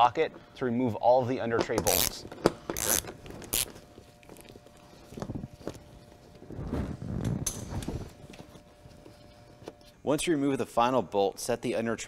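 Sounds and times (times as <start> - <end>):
hand ratchet clicking: 1.8 - 3.7.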